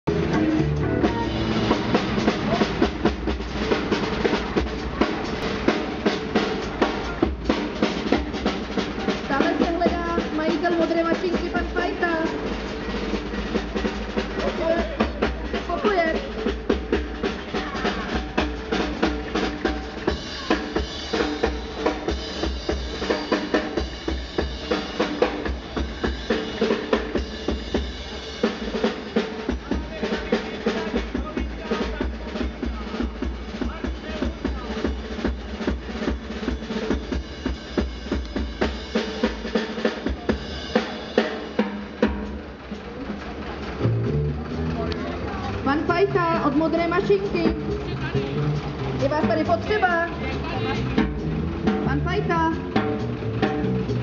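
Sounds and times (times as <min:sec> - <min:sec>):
band music: 0:00.0 - 0:54.0
drum kit beat: 0:00.0 - 0:54.0.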